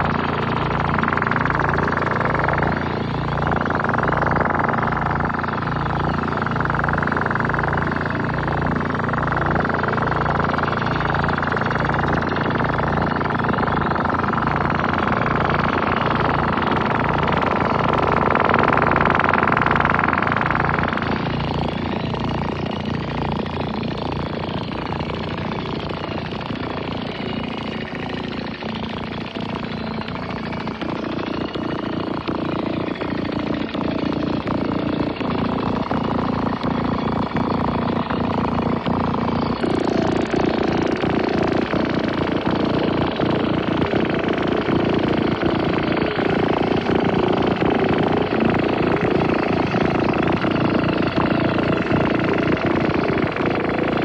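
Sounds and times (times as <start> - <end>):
pulsing low synth throb: 0.0 - 54.0
sweeping filtered tones: 0.0 - 54.0.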